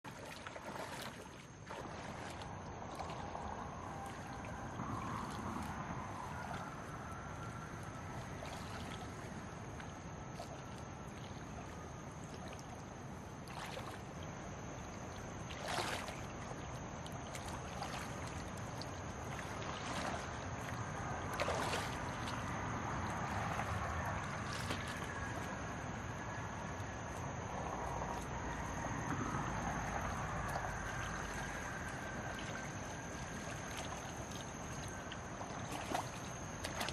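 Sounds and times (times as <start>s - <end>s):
running stream: 0.0s - 36.9s
water splashing around wading legs: 0.0s - 36.9s.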